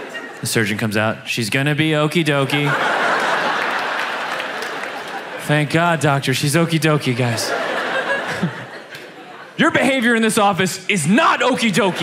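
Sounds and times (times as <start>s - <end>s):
audience applauding: 3.0s - 5.9s.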